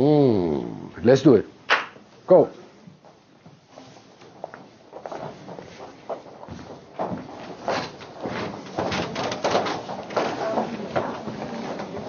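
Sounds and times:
shoes scuffing and sliding on floor: 2.9s - 9.2s.

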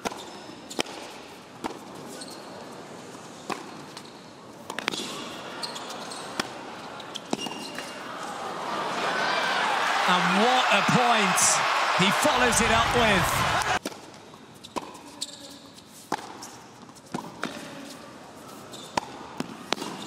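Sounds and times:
crowd noise: 8.0s - 13.8s.

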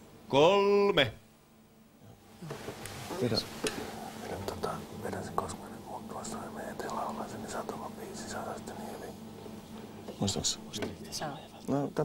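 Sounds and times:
men whispering: 3.2s - 12.0s.

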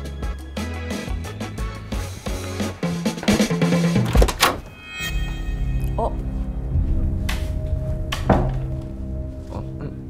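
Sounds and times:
background music with a beat: 0.0s - 4.2s
low thump: 6.8s - 8.9s.

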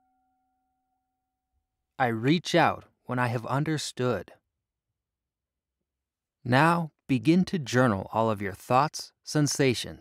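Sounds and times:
meditation bell ringing: 0.0s - 1.4s.

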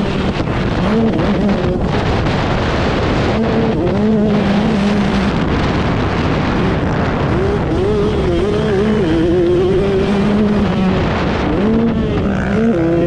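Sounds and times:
motocross engine revving: 0.0s - 13.0s.

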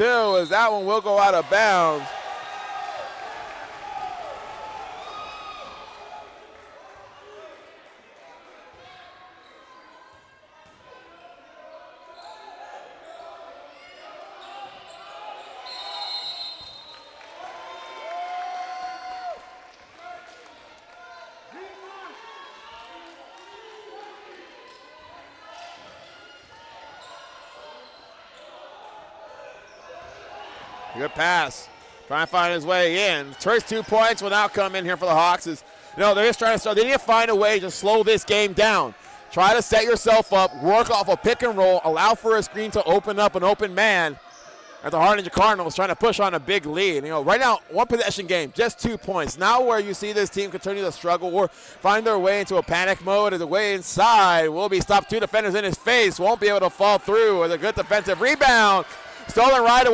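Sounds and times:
players' voices and calls: 0.0s - 6.0s, 24.7s - 59.9s.

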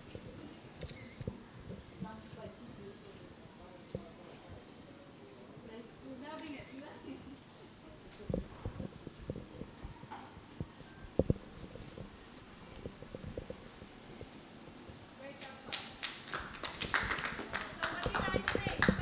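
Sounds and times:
voices: 0.0s - 16.1s, 16.9s - 19.0s
small group clapping: 15.3s - 19.0s.

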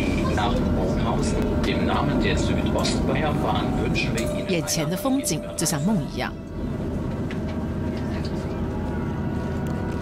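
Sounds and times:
people talking indistinctly: 0.0s - 6.5s.

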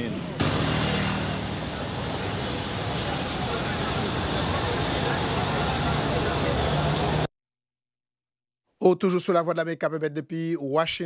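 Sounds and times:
traffic noise: 0.0s - 7.3s.

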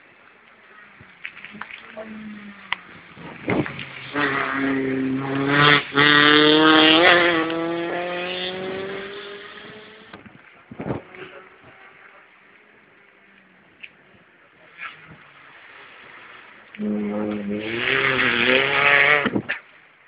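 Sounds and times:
rally car passing at speed: 2.1s - 10.2s, 14.8s - 19.5s.

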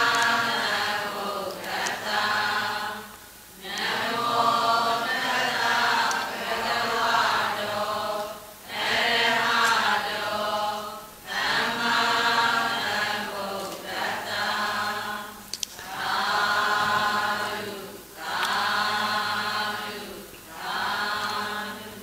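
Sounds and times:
devotional chanting: 0.0s - 22.0s.

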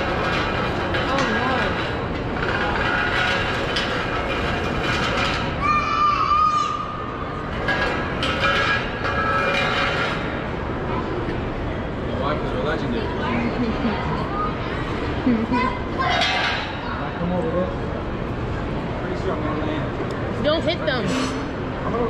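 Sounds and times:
crowd chatter: 0.0s - 3.3s, 10.3s - 22.0s.

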